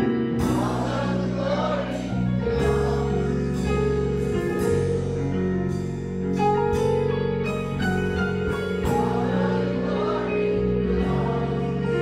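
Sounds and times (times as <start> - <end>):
choir singing gospel: 0.0 - 4.9, 8.3 - 12.0
held chords: 0.0 - 12.0.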